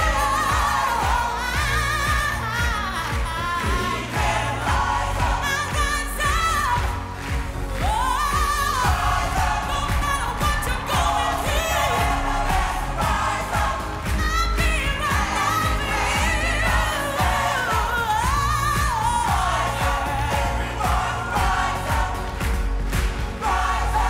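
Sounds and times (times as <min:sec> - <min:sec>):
backing music with deep bass: 0:00.0 - 0:24.0
choir singing: 0:00.0 - 0:24.0.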